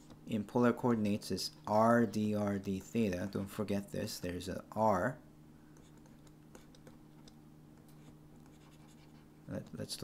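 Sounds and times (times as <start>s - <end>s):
stylus scratching on tablet screen: 5.8s - 9.4s.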